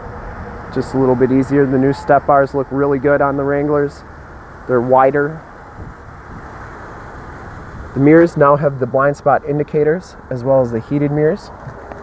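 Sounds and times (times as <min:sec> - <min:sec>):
outdoor rumble and hiss: 0:00.0 - 0:12.0.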